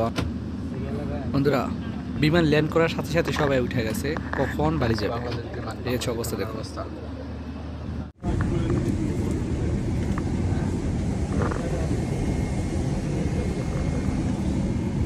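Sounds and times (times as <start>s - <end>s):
airliner cabin rumble: 0.0s - 15.0s
faint passenger voices: 0.0s - 15.0s.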